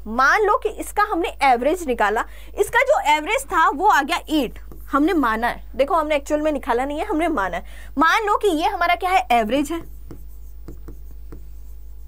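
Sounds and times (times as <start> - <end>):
steady low hum: 0.0 - 12.0
stylus tapping on screen: 4.5 - 5.0, 9.6 - 12.0.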